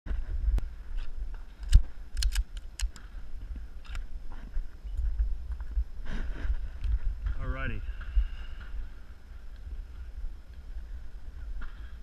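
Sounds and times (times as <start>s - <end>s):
wind rumbling on microphone: 0.1s - 12.0s.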